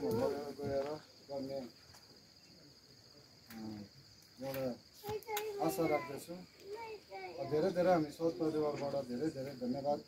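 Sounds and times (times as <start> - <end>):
insects chirring: 0.0 - 10.0
quiet talk: 0.0 - 10.0.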